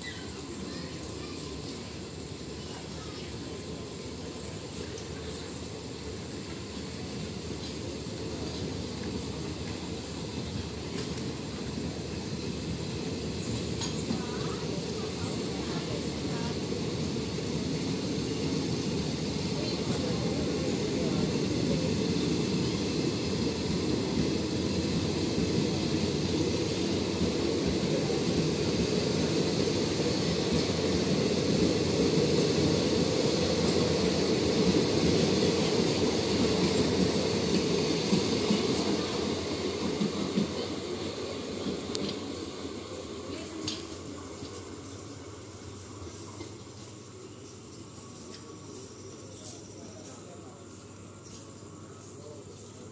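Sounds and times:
train wheels rumbling on track: 0.0 - 52.9.

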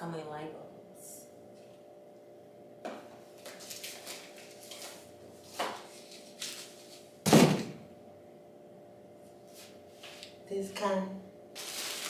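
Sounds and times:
loud thump: 7.3 - 7.8.

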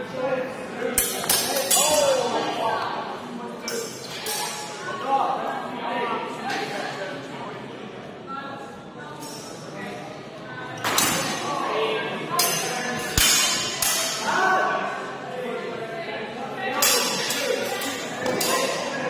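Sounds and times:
steel swords clashing: 1.0 - 2.2, 12.4 - 14.3, 16.8 - 18.9.

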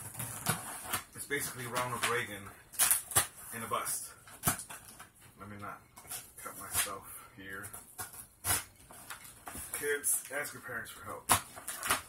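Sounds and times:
box cutter scraping packing tape: 0.0 - 3.5, 7.9 - 9.6, 11.3 - 12.0.

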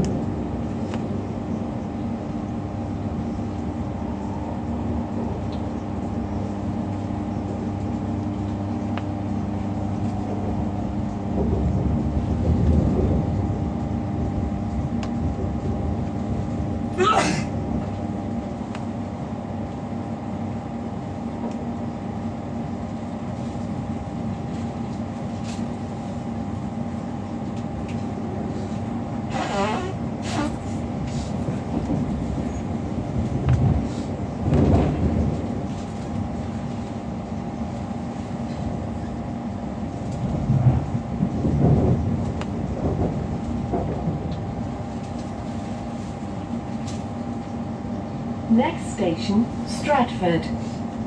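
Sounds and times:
electrical hum: 0.0 - 51.0
train wheels rumbling on rail: 0.0 - 51.0.

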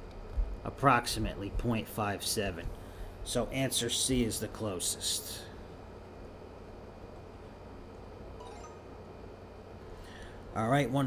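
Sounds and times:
low hum and hiss: 0.0 - 11.0
faint high tone: 8.4 - 9.3.

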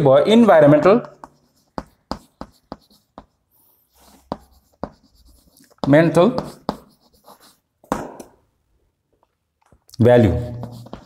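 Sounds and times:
chalk tapping and scratching: 0.4 - 7.7, 10.1 - 11.0.

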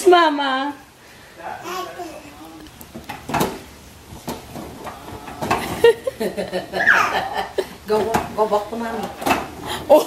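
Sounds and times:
small child babbling: 1.6 - 2.7
child squealing: 6.8 - 7.2.

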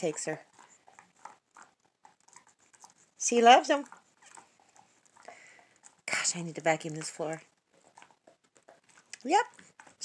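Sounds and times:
dog gnawing on a bone: 0.0 - 10.0.

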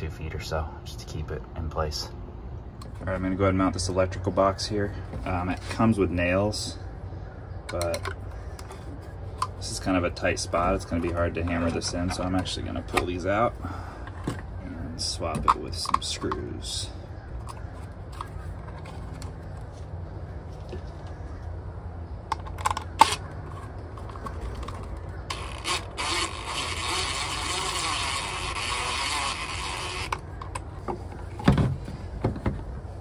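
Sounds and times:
clicks and knocks of handling: 7.6 - 9.6
cordless drill driving screw: 25.3 - 30.2.

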